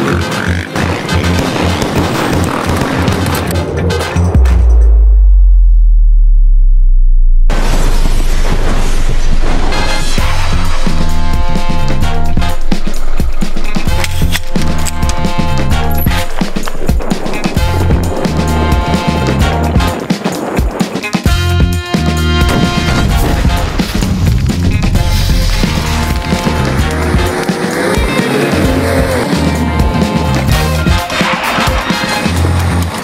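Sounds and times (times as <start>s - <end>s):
sub-bass drop: 0.6s - 20.0s, 21.3s - 31.0s.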